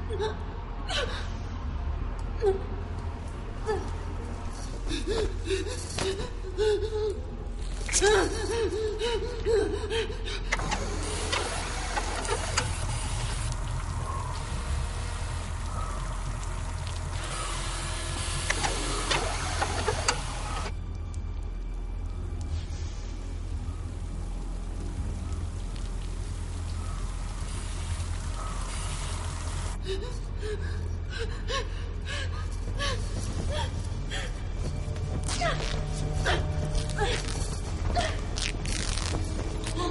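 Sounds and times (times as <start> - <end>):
low steady drone: 0.0 - 39.9.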